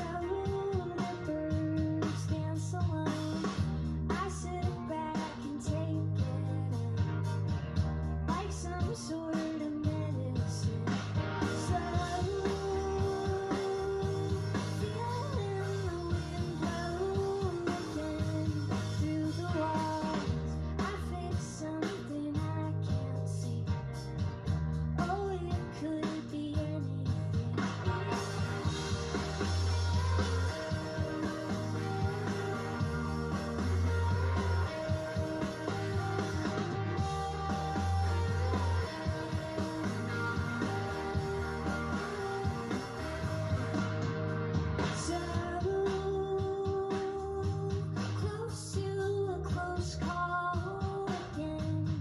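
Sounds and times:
woman singing lead: 0:00.0 - 0:07.2, 0:08.3 - 0:24.2, 0:25.0 - 0:44.0, 0:44.8 - 0:52.0
drum kit beat: 0:00.0 - 0:52.0
electric guitars: 0:27.4 - 0:45.6.

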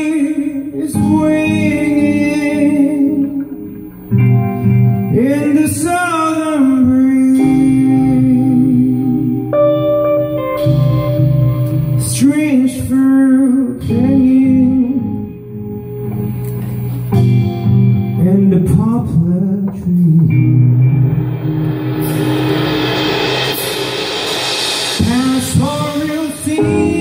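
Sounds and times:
man singing: 0:00.0 - 0:03.5, 0:05.1 - 0:09.5, 0:12.0 - 0:15.5, 0:18.2 - 0:20.6, 0:25.0 - 0:27.0
live rock band: 0:00.0 - 0:27.0
cymbals crashing: 0:20.8 - 0:27.0.

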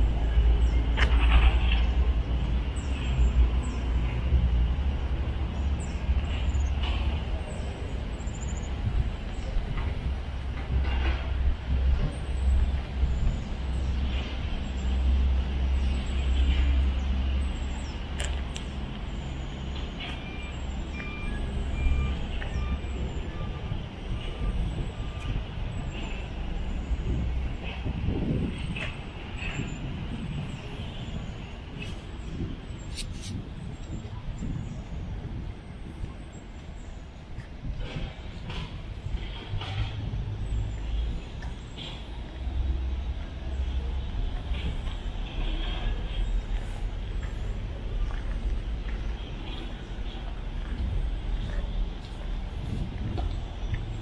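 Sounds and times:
short beeps: 0:20.3 - 0:23.6.

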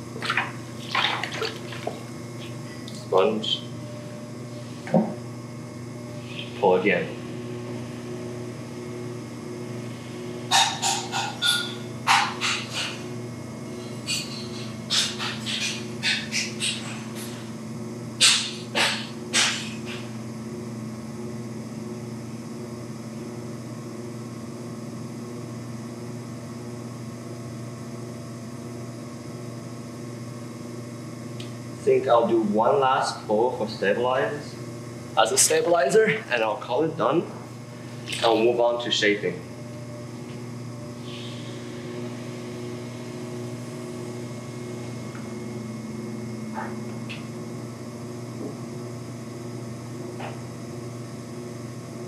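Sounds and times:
pottery wheel motor humming: 0:00.0 - 0:52.0.

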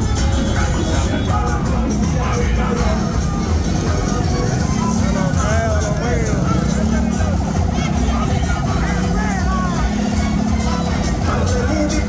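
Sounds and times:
loud music: 0:00.0 - 0:12.0
voices calling out: 0:00.0 - 0:12.0
motorcycle engine passing: 0:03.5 - 0:12.0.

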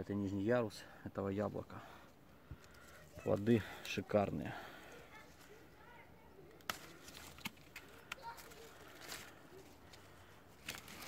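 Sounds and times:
leaves and twigs brushing phone: 0:02.6 - 0:11.0.

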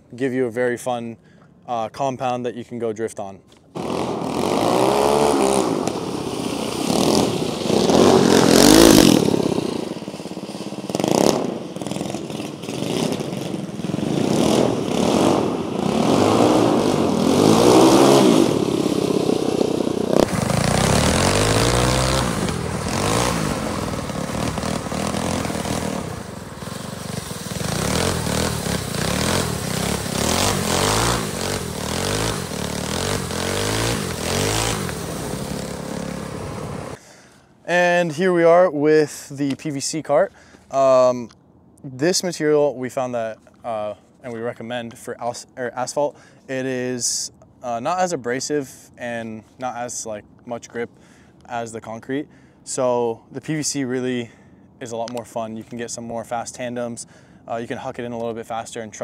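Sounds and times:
small kart engine revving: 0:03.8 - 0:37.0.

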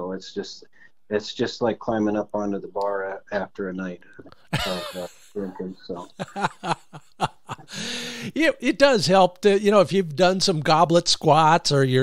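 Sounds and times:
person chuckling: 0:04.2 - 0:08.4
person breathing: 0:07.6 - 0:08.4.

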